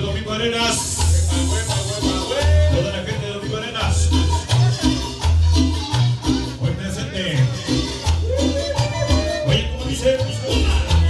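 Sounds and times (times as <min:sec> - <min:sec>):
cumbia music over sound system: 0:00.0 - 0:11.0.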